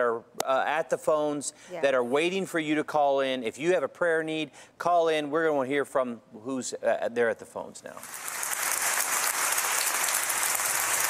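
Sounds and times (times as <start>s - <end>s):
applause: 8.0s - 11.0s.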